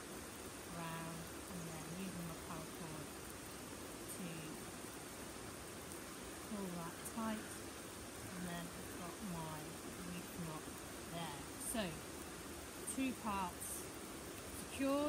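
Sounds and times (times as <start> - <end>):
light rain: 0.0 - 15.0.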